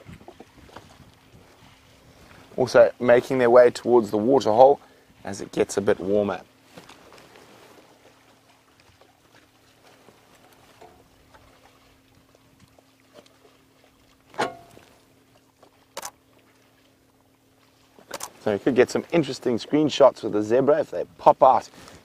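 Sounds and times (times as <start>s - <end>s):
low steady hum: 0.0s - 22.0s
water sloshing and splashing: 0.0s - 22.0s
sharp clicks: 16.0s - 16.2s.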